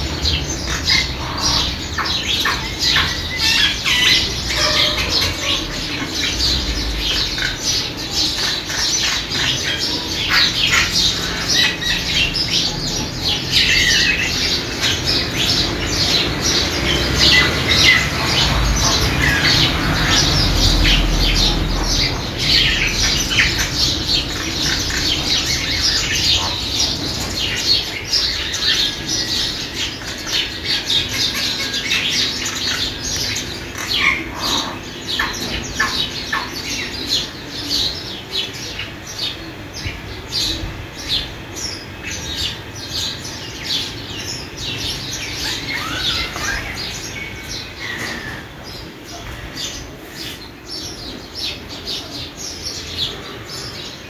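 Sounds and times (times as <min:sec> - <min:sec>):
birds chirping and squawking: 0:00.0 - 0:54.0.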